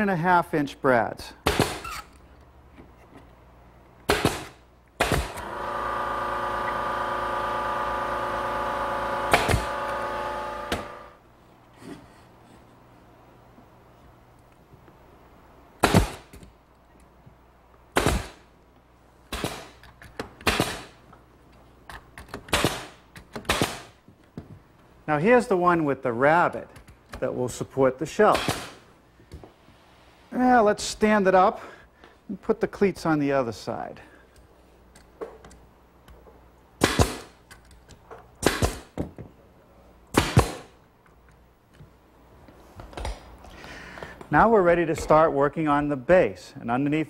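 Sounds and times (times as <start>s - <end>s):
nail gun firing: 1.4s - 1.9s, 4.1s - 11.1s, 15.8s - 16.4s, 17.9s - 18.5s, 19.3s - 21.0s, 22.3s - 24.0s, 28.3s - 28.8s, 36.8s - 37.4s, 38.4s - 39.0s, 40.1s - 40.8s.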